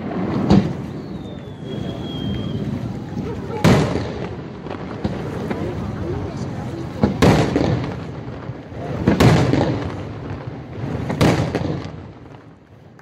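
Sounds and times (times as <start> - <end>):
firework shells booming: 0.0 - 13.0.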